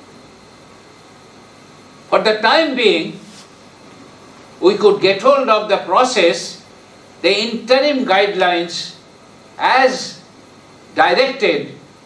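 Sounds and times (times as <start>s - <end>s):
faint hum: 0.0s - 12.0s
steady low hiss: 0.0s - 12.0s.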